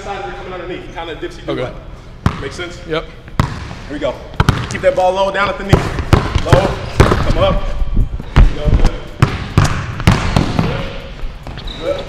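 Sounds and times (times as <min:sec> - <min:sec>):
basketball bouncing on hardwood: 0:04.4 - 0:04.8, 0:05.7 - 0:07.4, 0:09.2 - 0:10.8.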